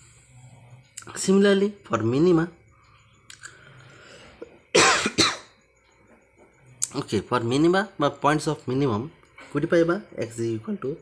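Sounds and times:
man coughing: 4.7 - 5.5.

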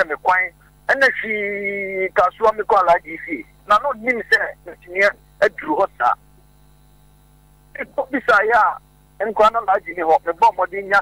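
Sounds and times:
person speaking: 0.0 - 6.3, 7.7 - 11.0
low electrical hum: 0.0 - 11.0.

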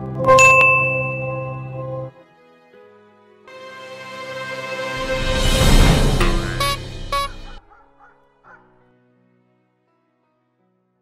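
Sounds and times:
logo jingle: 0.2 - 2.0, 3.5 - 7.6.

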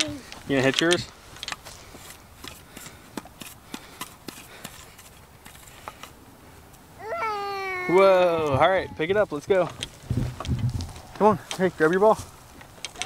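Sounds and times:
light clicks and rustles: 0.0 - 6.8, 9.5 - 13.0
faint outdoor background noise: 0.0 - 13.0.

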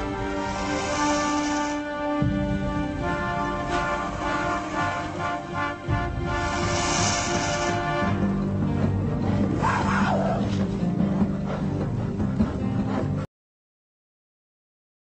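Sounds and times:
music of sustained chords: 0.0 - 13.2.

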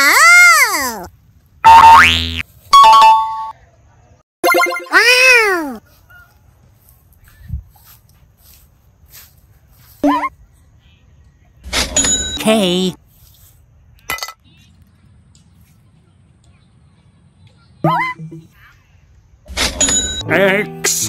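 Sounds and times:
warbling cartoon voice: 0.0 - 1.1, 4.5 - 5.8.

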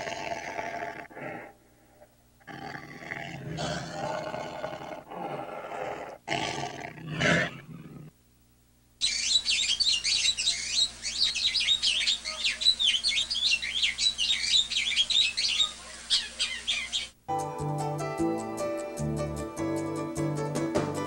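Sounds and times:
animal growling roars: 2.5 - 8.1
high bird chirps: 9.0 - 17.2.

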